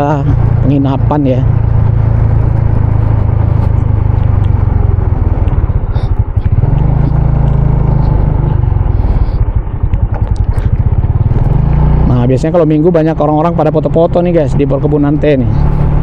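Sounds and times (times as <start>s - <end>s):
motorcycle engine rumbling: 0.0s - 16.0s
road noise: 0.0s - 16.0s.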